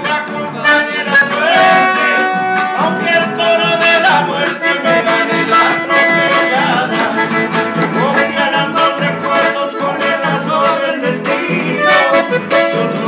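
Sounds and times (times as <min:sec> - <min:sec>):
accordion: 0:00.0 - 0:13.0
strummed guitar: 0:00.0 - 0:13.0.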